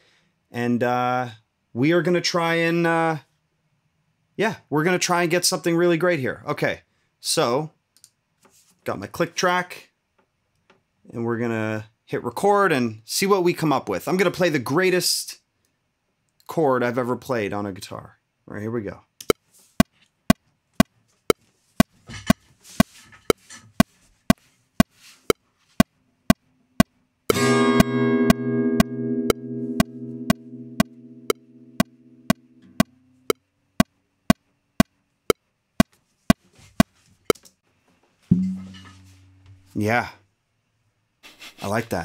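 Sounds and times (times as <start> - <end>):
acoustic guitar chord strummed: 27.3 - 32.8, 38.3 - 39.7
click track ticking: 27.8 - 32.9.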